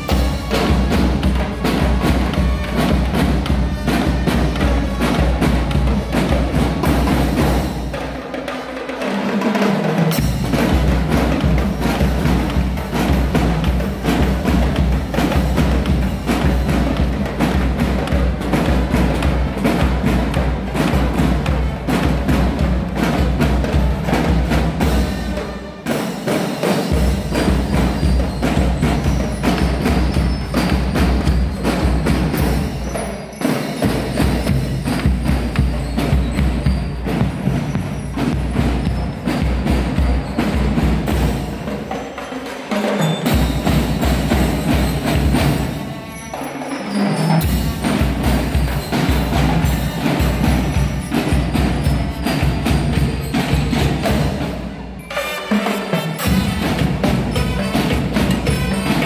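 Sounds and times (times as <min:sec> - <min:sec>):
snare drums: 0:00.0 - 0:59.0.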